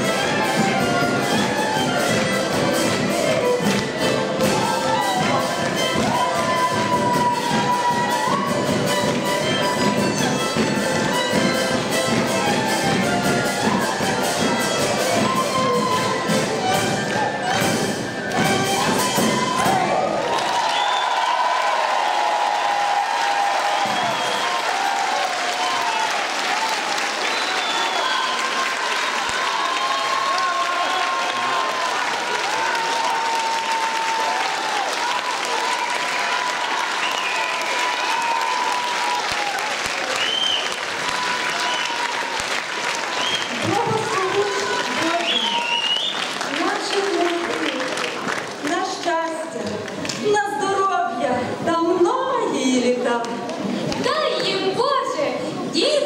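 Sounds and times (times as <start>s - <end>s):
folk ensemble with drums: 0.0s - 26.1s, 32.2s - 56.0s
audience applause: 0.0s - 50.3s.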